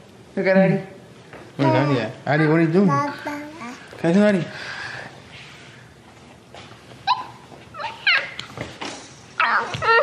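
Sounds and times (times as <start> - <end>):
toddler yipping: 7.1 - 8.4.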